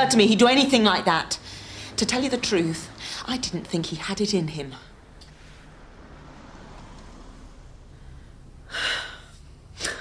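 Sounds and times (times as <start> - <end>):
woman speaking: 0.0 - 5.0
woman breathing sharply: 7.9 - 10.0.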